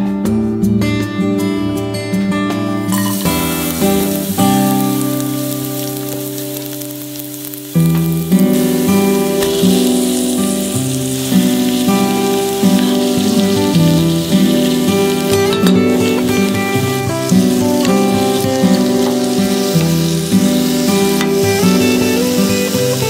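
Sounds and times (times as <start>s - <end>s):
background music: 0.0s - 23.0s
garlic sizzling in oil: 2.9s - 23.0s.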